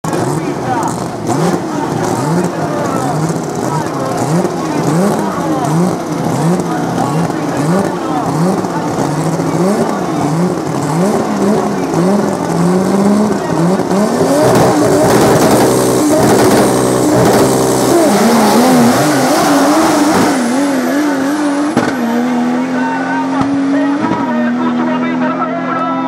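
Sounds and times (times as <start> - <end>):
racing car engines revving: 0.0 - 26.0.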